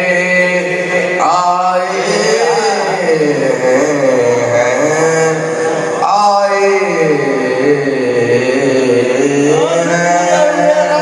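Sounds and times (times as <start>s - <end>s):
man chanting through microphone: 0.0s - 11.0s.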